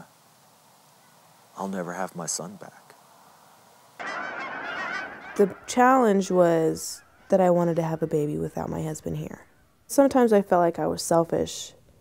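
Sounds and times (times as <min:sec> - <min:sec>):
geese honking: 0:04.0 - 0:10.0.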